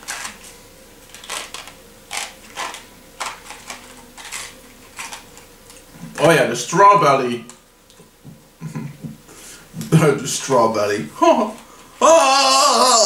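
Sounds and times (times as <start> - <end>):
candy wrapper crinkling: 1.1 - 5.4.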